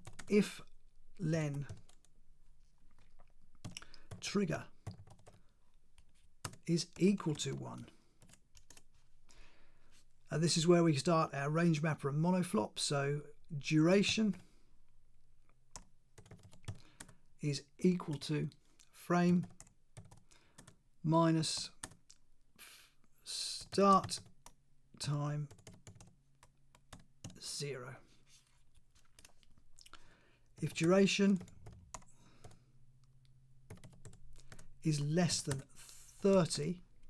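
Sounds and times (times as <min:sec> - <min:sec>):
faint computer keyboard typing: 0:00.0 - 0:02.2, 0:02.9 - 0:09.0, 0:15.7 - 0:17.2, 0:19.4 - 0:20.8, 0:21.5 - 0:22.2, 0:23.6 - 0:24.6, 0:25.4 - 0:27.4, 0:28.7 - 0:29.6, 0:30.6 - 0:34.7.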